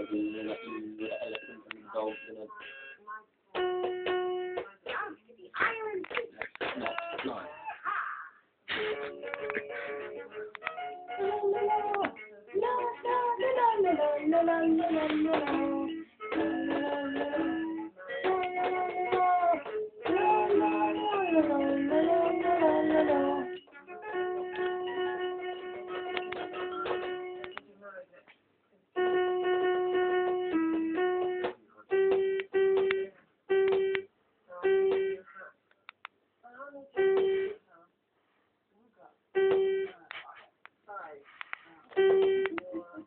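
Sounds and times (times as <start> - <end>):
toy synthesized keyboard notes: 0.0 - 4.8, 8.8 - 27.6, 29.0 - 35.2, 37.0 - 37.6, 39.4 - 40.0, 42.0 - 42.8.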